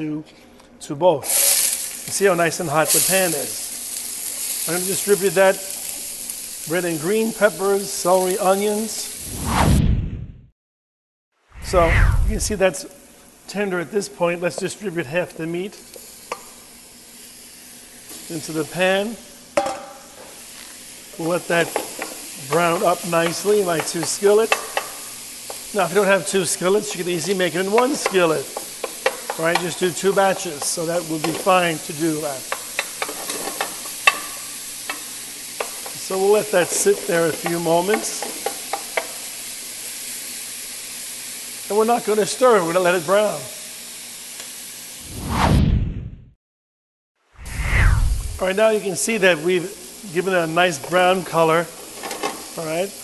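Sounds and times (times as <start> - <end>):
meat and vegetables sizzling: 1.2 - 9.4, 11.6 - 45.1, 47.9 - 53.0
deep rumble: 11.6 - 12.6, 47.4 - 48.4
whoosh sweeping down in pitch: 11.6 - 12.6, 47.4 - 48.4.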